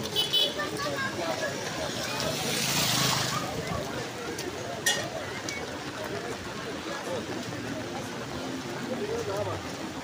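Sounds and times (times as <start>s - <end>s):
people talking: 0.0s - 10.0s
tyres splashing through water: 0.0s - 10.0s.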